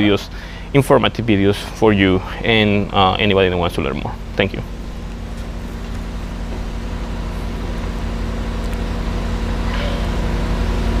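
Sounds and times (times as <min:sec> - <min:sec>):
truck diesel engine idling: 0:00.0 - 0:11.0.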